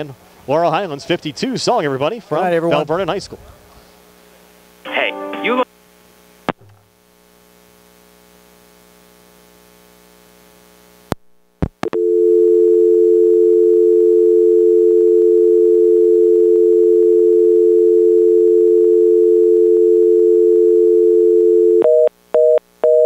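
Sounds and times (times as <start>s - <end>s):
telephone dial tone: 11.8s - 23.0s
telephone busy signal beeps: 12.0s - 23.0s.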